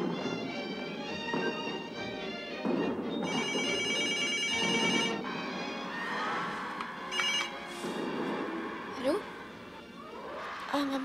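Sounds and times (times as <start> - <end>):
television sound: 0.0 - 11.0
telephone ringing: 3.2 - 5.2, 7.1 - 7.7.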